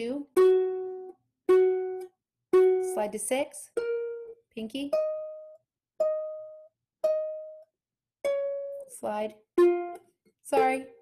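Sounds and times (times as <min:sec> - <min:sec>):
ukulele notes plucked: 0:00.0 - 0:08.9, 0:09.6 - 0:11.0.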